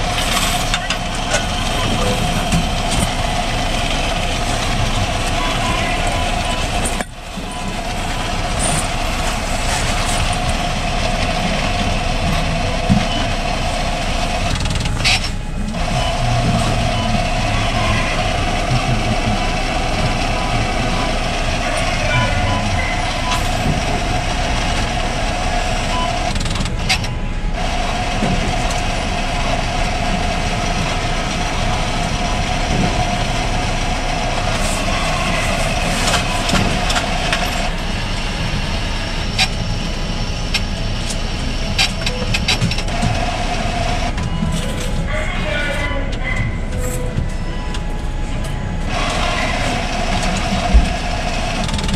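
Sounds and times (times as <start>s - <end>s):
coin machine whirring: 0.0s - 45.8s, 46.6s - 51.9s.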